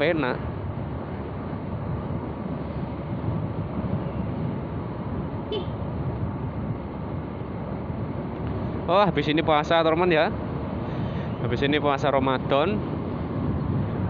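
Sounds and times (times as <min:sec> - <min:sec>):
road and wind noise: 0:00.0 - 0:14.0.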